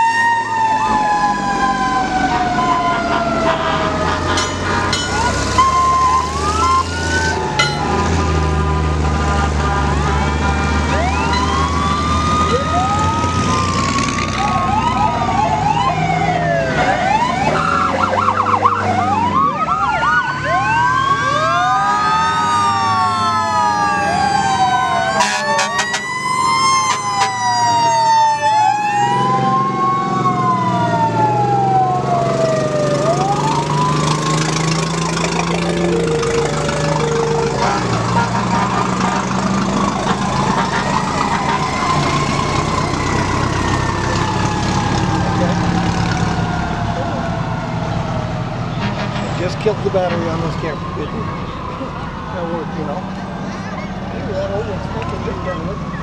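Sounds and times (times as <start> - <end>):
fire truck sirens wailing: 0.0 - 56.0
siren yelp: 0.0 - 56.0
truck engines running: 0.0 - 56.0.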